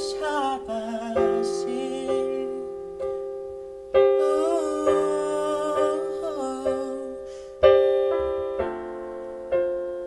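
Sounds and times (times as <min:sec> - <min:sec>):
man singing a hymn: 0:00.0 - 0:02.9, 0:04.2 - 0:07.5
electric piano chords: 0:00.0 - 0:10.0.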